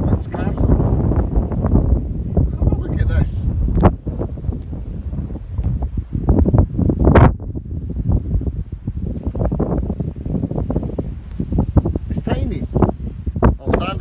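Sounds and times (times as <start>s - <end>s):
wind blowing across microphone: 0.0s - 14.0s.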